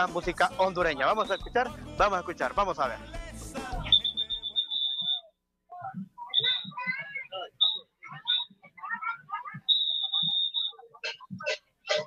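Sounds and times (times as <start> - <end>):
voices: 0.0 - 2.7, 3.5 - 12.0
whistle blown: 1.3 - 1.6, 3.8 - 5.3, 6.3 - 8.6, 9.6 - 12.0.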